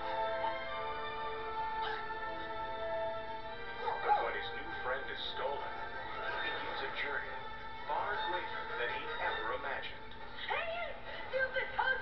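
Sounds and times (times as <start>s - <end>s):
film trailer music: 0.0s - 12.0s.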